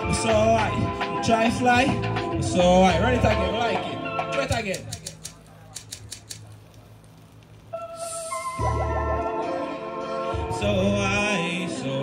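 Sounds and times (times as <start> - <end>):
sharp dry clicks: 4.4 - 7.8.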